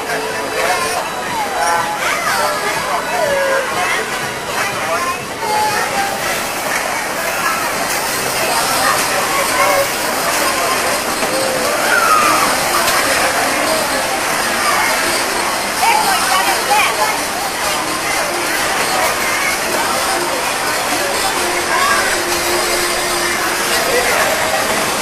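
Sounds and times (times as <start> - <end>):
children's voices: 0.0 - 25.0
crowd chatter: 0.0 - 25.0.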